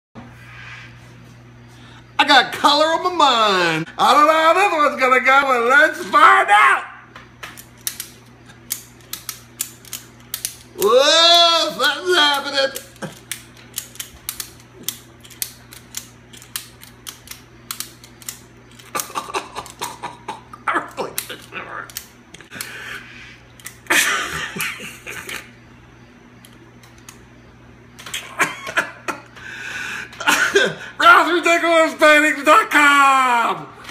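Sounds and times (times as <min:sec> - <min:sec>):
man crying out and laughing: 0:06.0 - 0:07.0, 0:30.1 - 0:31.1
ratchet strap clicking: 0:07.5 - 0:19.0.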